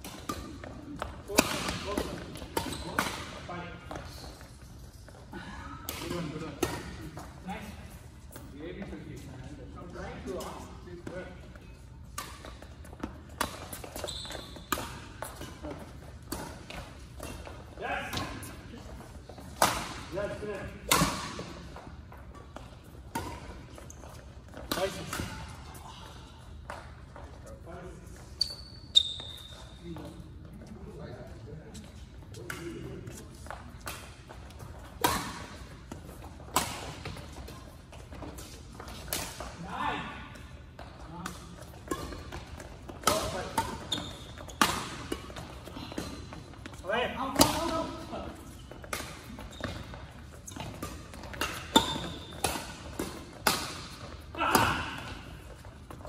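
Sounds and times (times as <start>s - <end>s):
shoe squeak: 2.6s - 3.4s, 13.6s - 15.2s, 27.4s - 30.2s, 43.4s - 45.0s, 48.5s - 52.5s
rackets striking shuttlecock: 33.4s - 39.6s, 41.3s - 48.0s, 48.7s - 56.0s.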